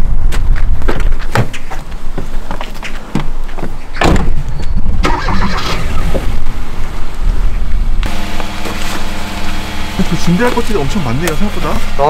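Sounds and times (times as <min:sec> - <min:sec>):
car engine starting and idling: 0:05.0 - 0:07.2, 0:08.0 - 0:12.0.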